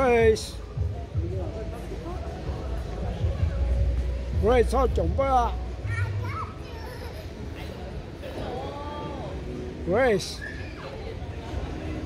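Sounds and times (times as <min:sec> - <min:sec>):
child's high voice: 0:05.8 - 0:07.7.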